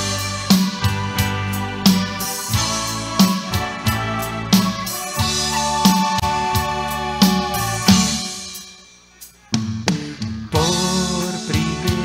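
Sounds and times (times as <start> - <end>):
live band instrumental: 0.0 - 12.0.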